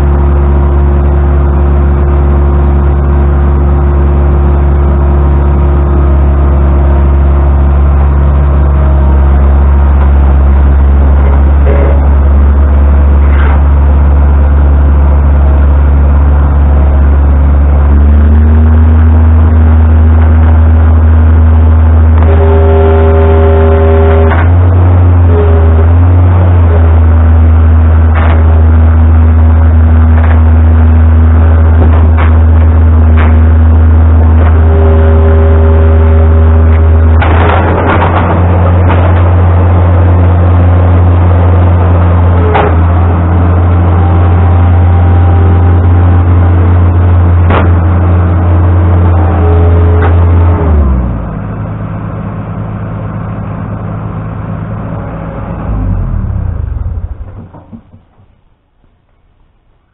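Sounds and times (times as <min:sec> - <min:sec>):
diesel engine running at high throttle: 0:00.0 - 0:59.9
knocks and clanks: 0:28.1 - 0:28.6, 0:31.8 - 0:33.6, 0:36.7 - 0:39.7, 0:42.5 - 0:43.0, 0:47.4 - 0:48.0, 0:56.4 - 0:58.6.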